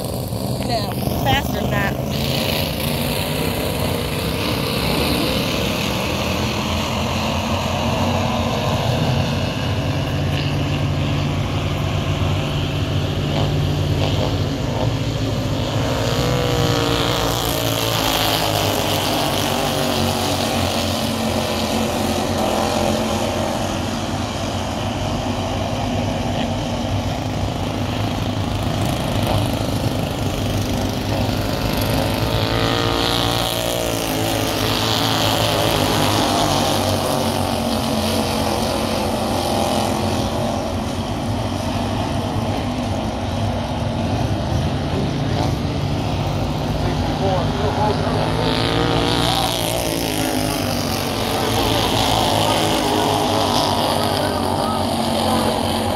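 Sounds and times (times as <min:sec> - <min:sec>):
race car engines: 0:00.0 - 0:55.9.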